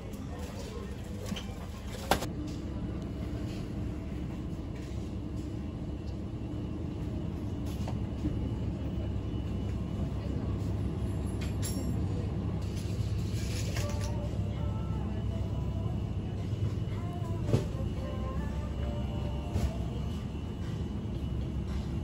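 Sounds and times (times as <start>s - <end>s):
refrigerated freezers humming: 0.0s - 22.0s.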